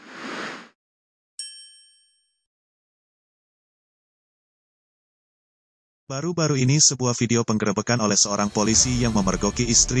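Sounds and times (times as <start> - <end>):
bright bell-like ding: 1.4 - 2.5.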